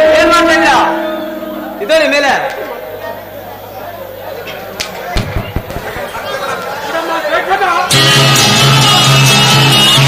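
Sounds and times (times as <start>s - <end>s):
music: 0.0s - 3.1s, 7.9s - 10.0s.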